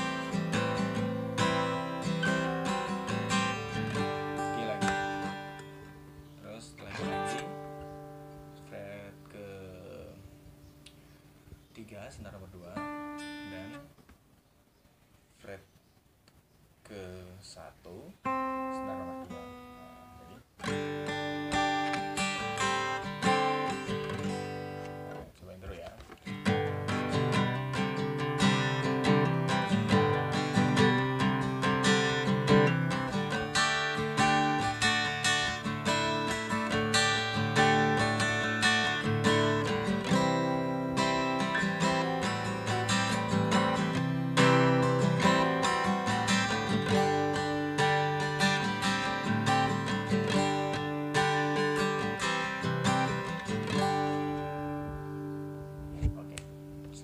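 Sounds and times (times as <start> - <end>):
acoustic guitar playing: 0.0 - 14.0, 17.9 - 57.0.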